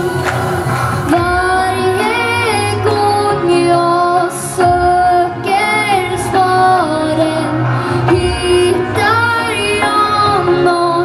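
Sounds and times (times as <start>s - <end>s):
girl singing into microphone: 1.1s - 11.0s.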